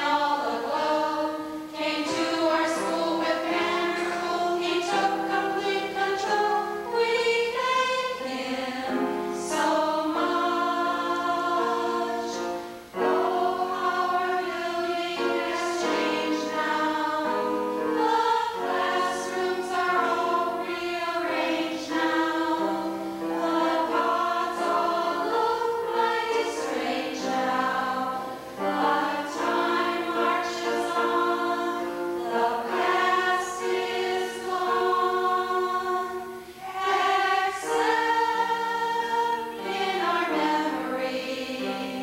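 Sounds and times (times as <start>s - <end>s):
women's choir singing: 0.0s - 42.0s.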